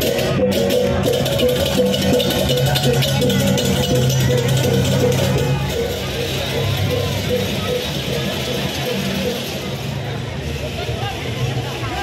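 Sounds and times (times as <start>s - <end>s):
crowd voices talking and calling: 0.0s - 12.0s.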